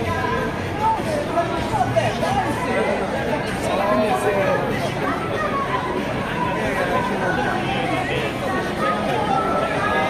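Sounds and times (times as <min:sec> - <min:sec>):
chatter of passers-by: 0:00.0 - 0:10.0.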